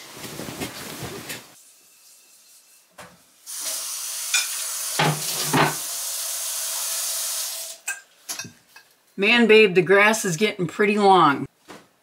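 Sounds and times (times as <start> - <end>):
dishes knocking and clinking: 4.4 - 5.8, 7.9 - 8.6
tap running into metal sink: 5.0 - 5.8.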